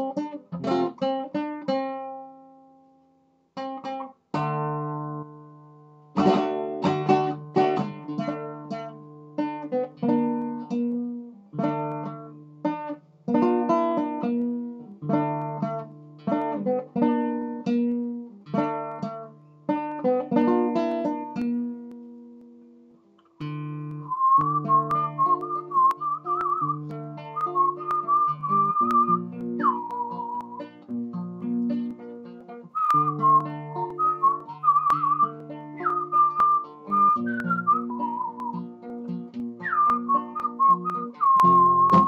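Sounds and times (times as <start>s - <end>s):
acoustic guitar plucked chords: 0.0s - 2.6s, 3.6s - 42.0s
man whistling a melody: 24.0s - 30.8s, 32.7s - 38.7s, 39.6s - 42.0s.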